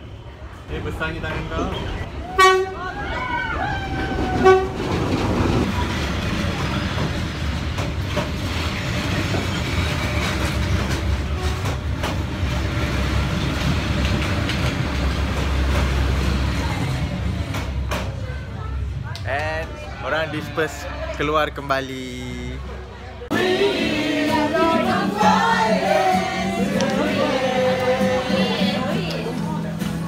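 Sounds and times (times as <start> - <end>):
train passing rumble: 0.0 - 30.0
train horn blasts: 2.3 - 2.8, 4.4 - 4.8.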